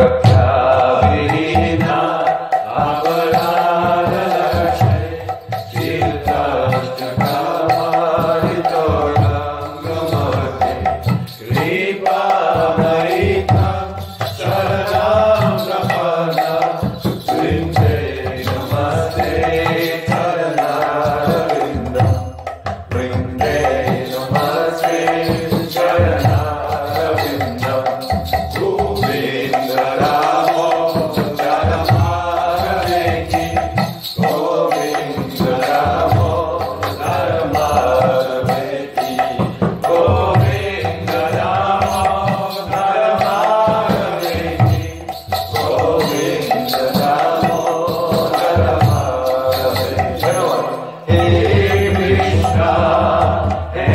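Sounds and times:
light steady percussive beat: 0:00.0 - 0:53.9
man singing a devotional chant: 0:00.0 - 0:53.9.

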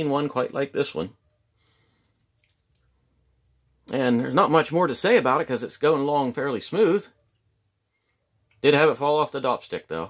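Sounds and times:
man talking: 0:00.0 - 0:01.2, 0:03.8 - 0:07.2, 0:08.6 - 0:10.0
small stone clicks: 0:02.3 - 0:03.7.

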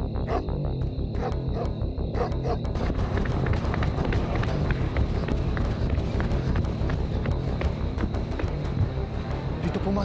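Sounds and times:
footsteps running on pavement: 0:03.0 - 0:09.0.

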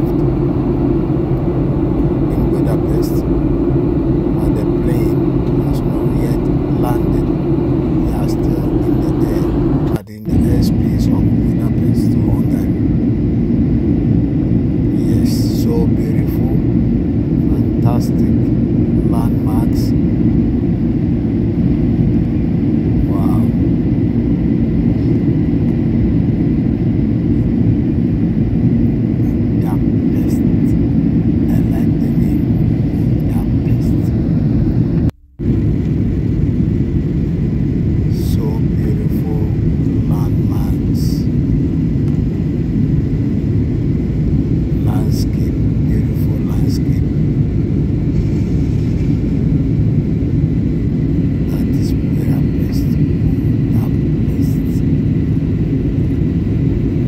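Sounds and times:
airliner engines and airflow rushing: 0:00.0 - 0:57.0
faint voices: 0:08.0 - 0:12.7.

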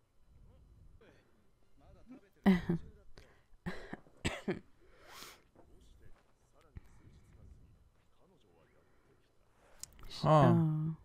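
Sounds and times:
person coughing: 0:03.7 - 0:04.6.

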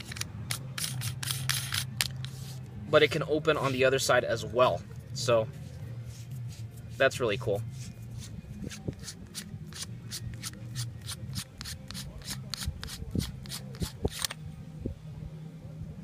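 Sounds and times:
metal cap unscrewing clicks: 0:00.0 - 0:02.4, 0:11.3 - 0:14.4.

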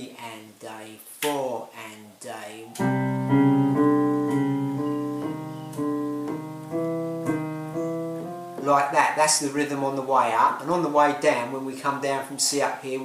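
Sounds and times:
electronic keyboard piano notes: 0:02.7 - 0:10.8.

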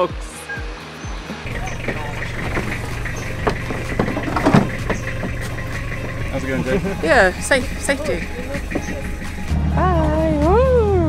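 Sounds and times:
footsteps on metal truck bed: 0:01.5 - 0:09.6
pickup truck engine idling: 0:01.5 - 0:10.0.

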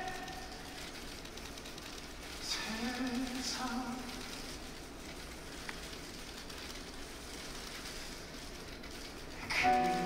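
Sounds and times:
faint hall hiss: 0:00.0 - 0:10.0.

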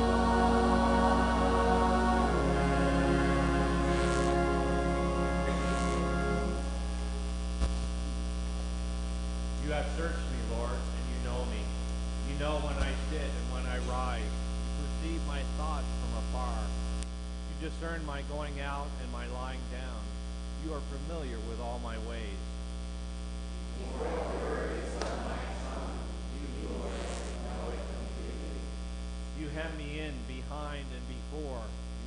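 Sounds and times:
electrical mains hum: 0:00.0 - 0:32.0
faint indistinct talking: 0:23.7 - 0:28.7.

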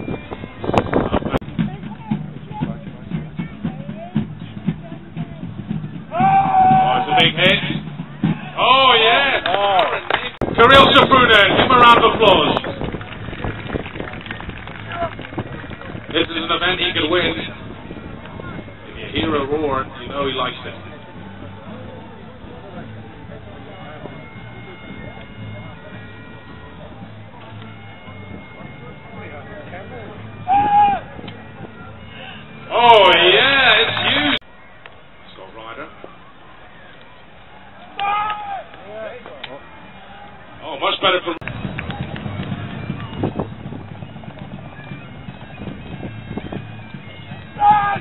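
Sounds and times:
low crowd murmur: 0:00.0 - 0:48.0
open field noise: 0:00.0 - 0:48.0
man shouting: 0:06.1 - 0:07.4, 0:47.6 - 0:48.0
distant bagpipe music: 0:16.3 - 0:38.4, 0:39.5 - 0:48.0.

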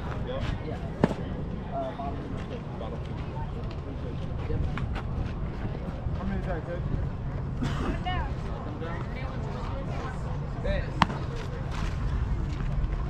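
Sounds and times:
distant voices: 0:00.0 - 0:13.0
steady low rumble: 0:00.0 - 0:13.0.

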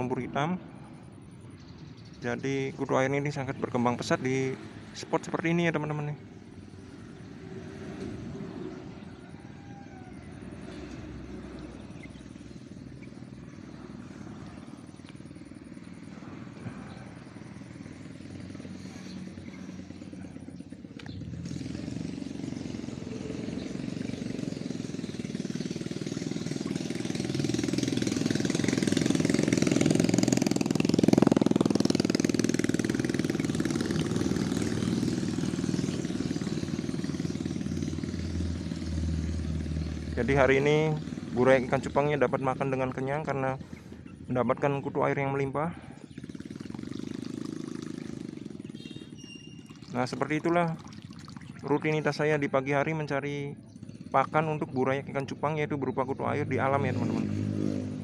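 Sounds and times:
vehicle engine passing: 0:00.0 - 0:58.0.

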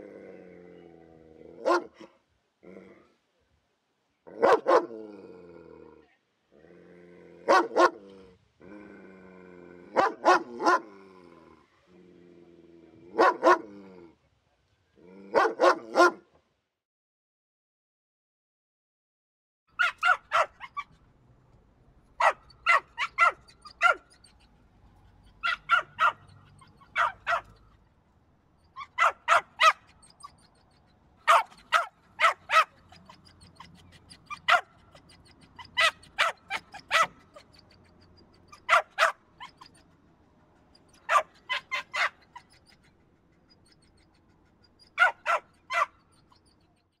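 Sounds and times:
small dog barking: 0:01.6 - 0:02.1, 0:04.3 - 0:05.0, 0:07.5 - 0:08.0, 0:10.0 - 0:10.9, 0:13.1 - 0:13.7, 0:15.3 - 0:16.2, 0:19.8 - 0:20.9, 0:22.2 - 0:24.1, 0:25.4 - 0:27.6, 0:28.8 - 0:29.9, 0:31.2 - 0:34.9, 0:35.6 - 0:37.5, 0:38.5 - 0:39.7, 0:41.0 - 0:42.2, 0:45.0 - 0:46.0.

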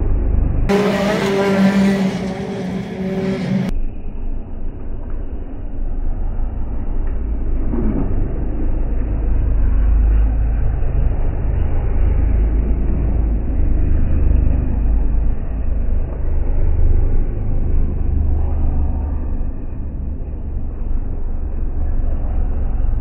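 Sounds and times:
slowed car engine rumble: 0:00.0 - 0:23.0.

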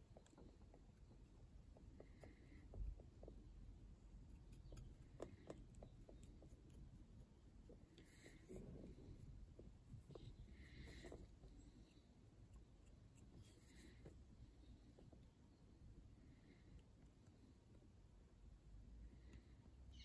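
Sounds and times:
soft scratchy rubs: 0:04.2 - 0:15.3.

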